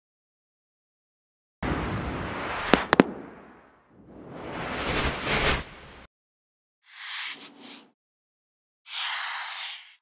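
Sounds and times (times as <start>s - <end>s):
sharp pops: 2.7s - 3.4s.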